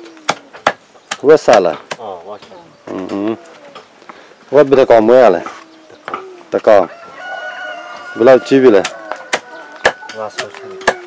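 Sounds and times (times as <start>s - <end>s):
bird calling: 0.0s - 11.0s.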